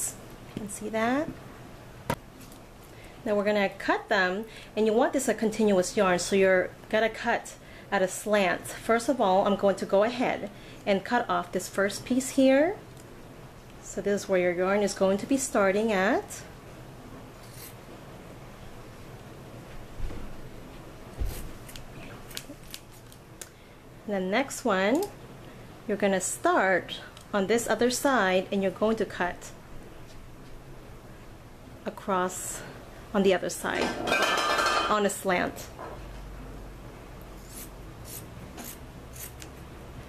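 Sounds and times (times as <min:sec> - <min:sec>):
scissors cutting fabric: 0:37.4 - 0:39.5.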